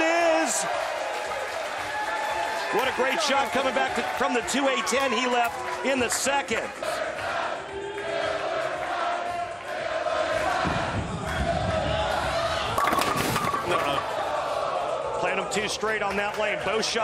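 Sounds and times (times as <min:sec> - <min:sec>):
crowd chanting and yelling: 0:00.0 - 0:17.0
bowling pins crashing: 0:12.7 - 0:14.1
bowling ball rolling: 0:12.7 - 0:14.2.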